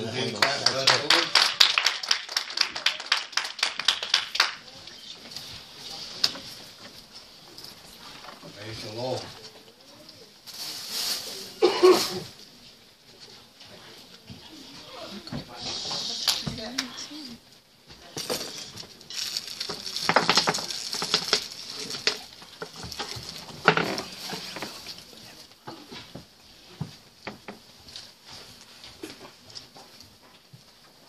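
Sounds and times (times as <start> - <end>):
people rustling and shuffling: 0.0 - 31.0.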